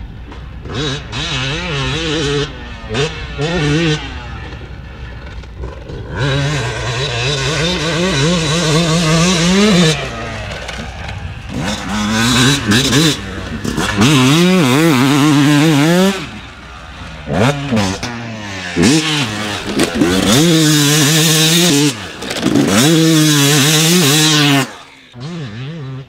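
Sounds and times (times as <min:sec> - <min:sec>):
dirt bike engine revving: 0:00.5 - 0:26.0.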